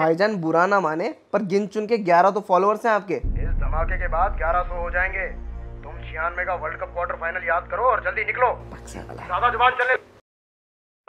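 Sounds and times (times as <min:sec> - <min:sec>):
man talking: 0:00.0 - 0:08.6.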